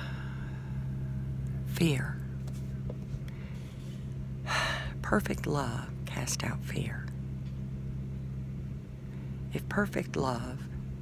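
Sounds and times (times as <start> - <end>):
woman breathing in: 0.0 - 1.1, 4.5 - 5.0
steady low hum: 0.0 - 11.0
woman speaking: 1.6 - 2.3, 4.9 - 7.2, 9.5 - 10.7.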